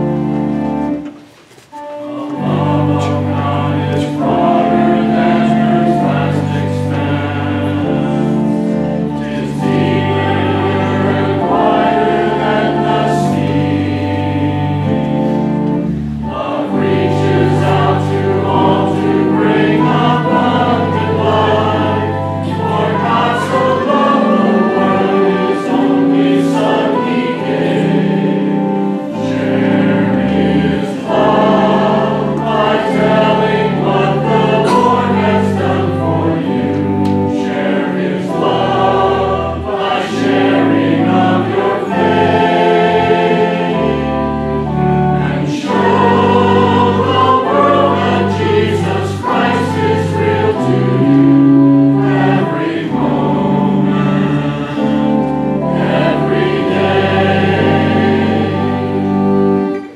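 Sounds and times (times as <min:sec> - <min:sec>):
choir and congregation singing hymn: 0:00.0 - 0:59.9.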